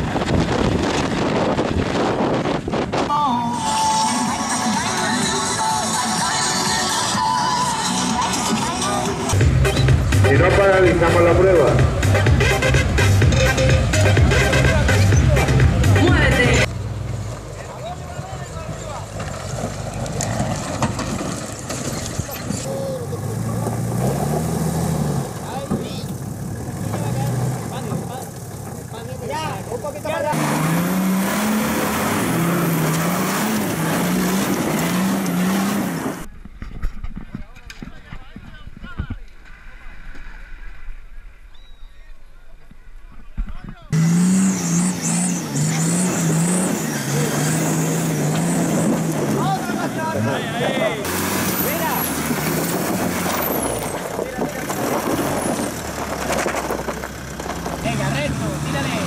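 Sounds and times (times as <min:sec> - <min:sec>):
off-road engines revving: 0:00.0 - 0:36.3, 0:43.9 - 0:59.0.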